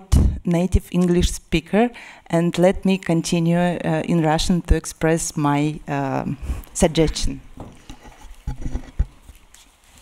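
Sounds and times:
microphone handling knocks: 0:07.6 - 0:09.2.

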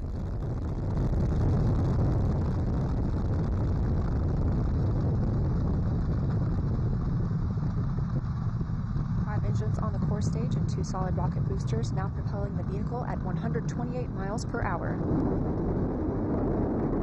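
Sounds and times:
rocket deep rumble: 0:00.0 - 0:17.0.

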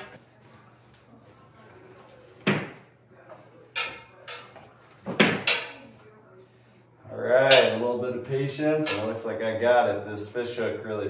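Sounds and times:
cable knocking and scraping in ceiling: 0:03.7 - 0:06.0.

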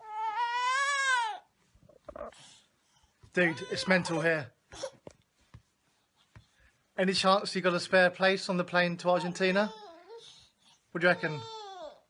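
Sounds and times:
toddler crying: 0:00.0 - 0:01.5, 0:03.4 - 0:05.0, 0:09.2 - 0:10.4, 0:11.1 - 0:12.0.

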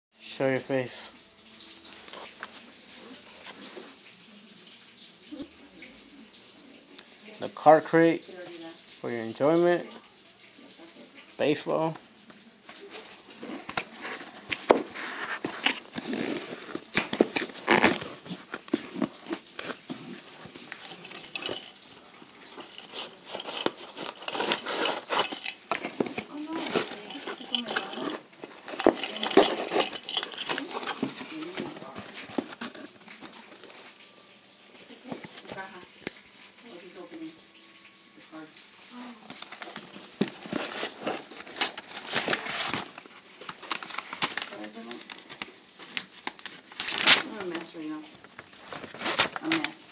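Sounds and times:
cardboard box rustling and scraping: 0:12.8 - 0:20.6, 0:22.7 - 0:32.8, 0:39.6 - 0:43.0.

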